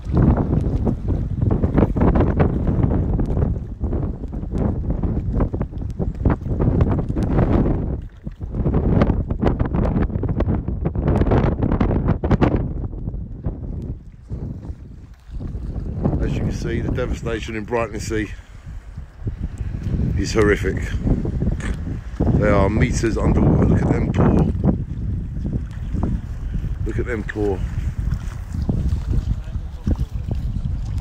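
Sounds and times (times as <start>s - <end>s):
wind buffeting microphone: 0.0s - 31.0s.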